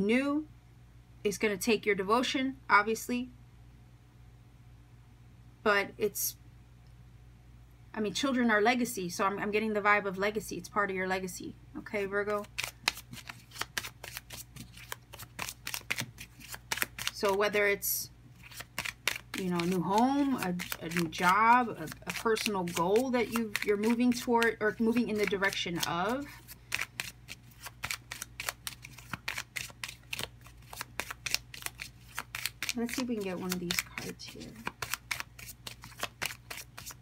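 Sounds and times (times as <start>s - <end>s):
cards being shuffled by hand: 12.2s - 17.5s, 18.4s - 37.0s.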